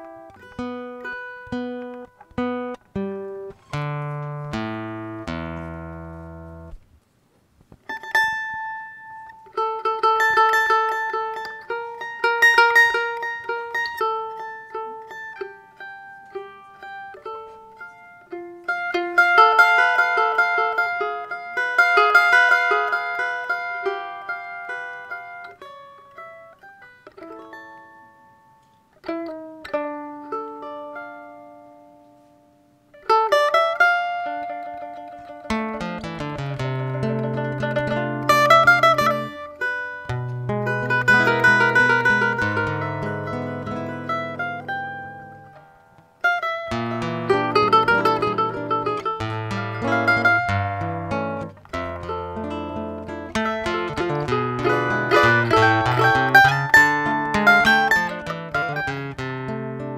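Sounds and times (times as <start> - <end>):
acoustic guitar: 0.0 - 59.9
mandolin melody: 0.0 - 59.9.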